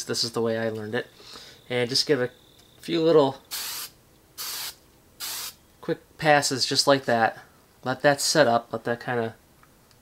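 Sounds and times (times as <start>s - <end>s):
aerosol can hissing bursts: 3.5s - 5.6s.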